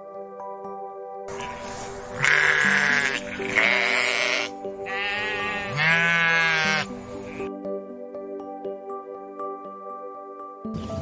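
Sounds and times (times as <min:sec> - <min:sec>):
soft background music: 0:00.0 - 0:11.0
sheep bleating: 0:01.3 - 0:07.5.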